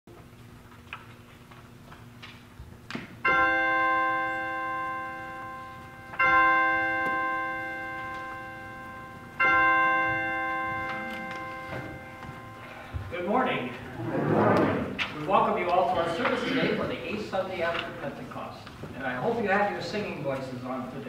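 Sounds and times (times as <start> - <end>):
bell ringing: 3.2 - 13.8.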